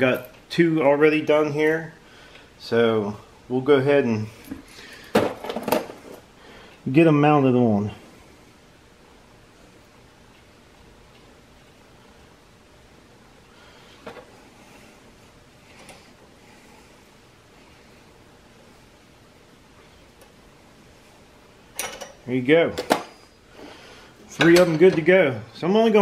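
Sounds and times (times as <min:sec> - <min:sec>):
room tone hiss: 0:00.0 - 0:26.0.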